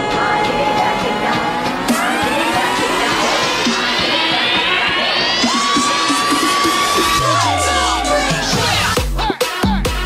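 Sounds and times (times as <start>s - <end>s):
dense wash of noise: 0.0s - 8.5s
held high synth tone: 0.0s - 8.5s
upward-sliding synth sweeps: 0.0s - 8.9s.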